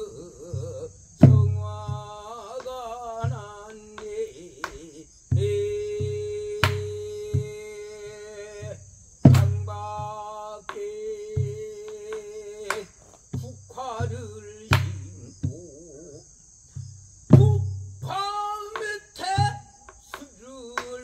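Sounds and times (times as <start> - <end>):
deep drum strokes: 0.0 - 4.4, 5.2 - 20.2
person singing long notes: 0.0 - 16.3, 17.4 - 21.0
sharp stick strikes: 9.3 - 9.6.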